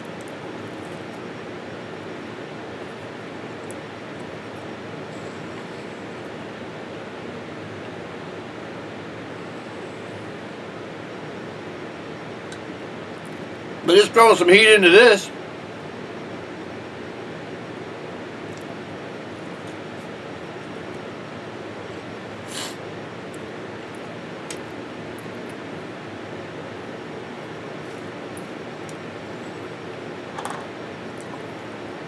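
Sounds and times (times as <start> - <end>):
room noise hiss: 0.0 - 32.0.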